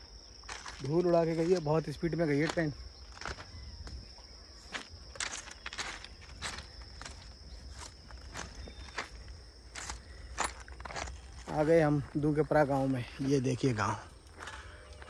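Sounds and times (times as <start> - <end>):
footsteps on ballast stones: 0.3 - 15.0.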